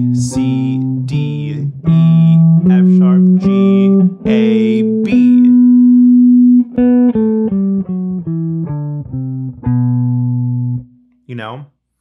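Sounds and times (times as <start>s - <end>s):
electric guitar playing scale notes: 0.0s - 11.2s.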